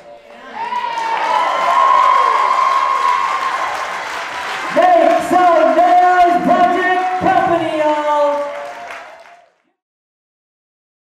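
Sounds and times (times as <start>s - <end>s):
audience cheering and applauding: 0.0s - 9.7s.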